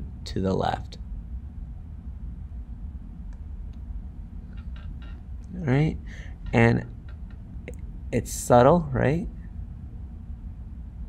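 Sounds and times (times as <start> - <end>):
low room and microphone hum: 0.0 - 11.0.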